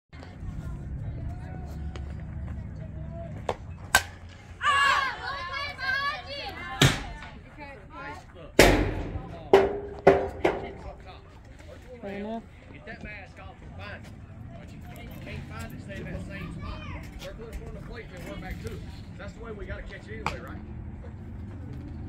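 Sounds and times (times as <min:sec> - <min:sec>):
softball bat cracks: 0:03.9 - 0:04.4.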